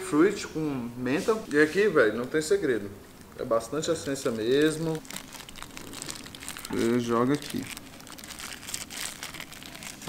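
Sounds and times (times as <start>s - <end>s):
foil pouch crinkling: 4.0s - 10.0s.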